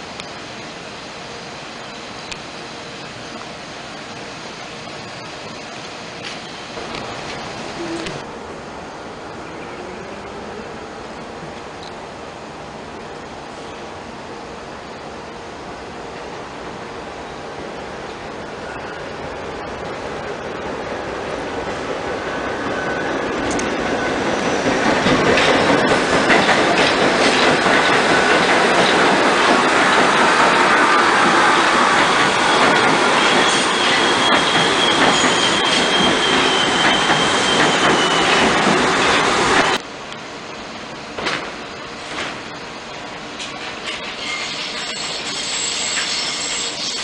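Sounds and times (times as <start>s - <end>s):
subway train rumble: 0.0s - 47.0s
train cars clacking: 19.8s - 39.8s
high wheel squeal: 32.3s - 39.4s, 44.1s - 47.0s.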